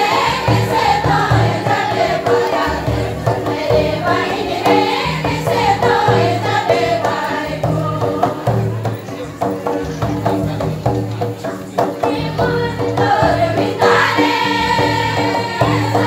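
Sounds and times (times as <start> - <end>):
group singing folk dance song: 0.0 - 16.0.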